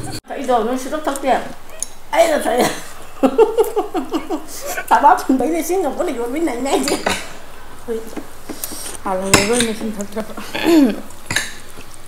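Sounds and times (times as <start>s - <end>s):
women's voices: 0.0s - 8.3s, 9.0s - 11.1s
tableware clinking on glass table: 6.7s - 7.3s, 11.3s - 11.6s.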